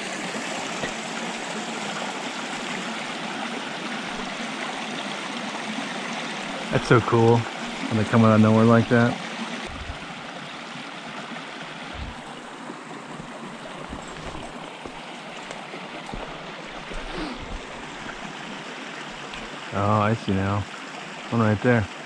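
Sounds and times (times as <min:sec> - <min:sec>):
creek water running over rocks: 0:00.0 - 0:22.0.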